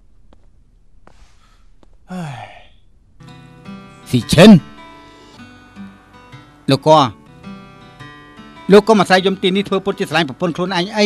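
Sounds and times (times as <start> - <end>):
man sighing: 1.4 - 2.8
soft guitar background music: 3.2 - 11.0.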